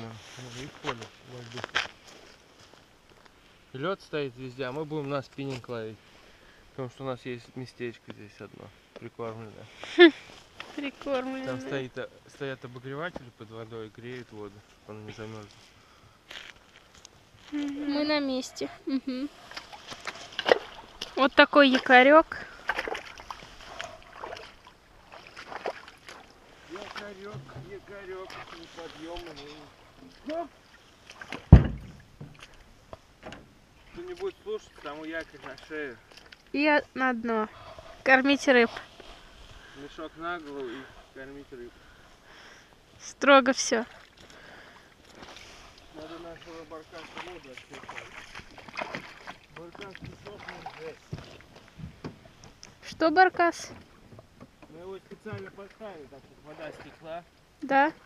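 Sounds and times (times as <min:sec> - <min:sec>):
water lapping: 0:13.5 - 0:58.0
knocks on small boat: 0:27.3 - 0:27.8, 0:31.3 - 0:32.5, 0:51.1 - 0:52.6
anchor knocking against boat: 0:31.4 - 0:32.5.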